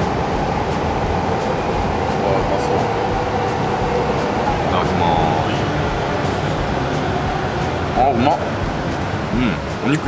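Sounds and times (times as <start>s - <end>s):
busy dining room rumble: 0.0s - 10.0s.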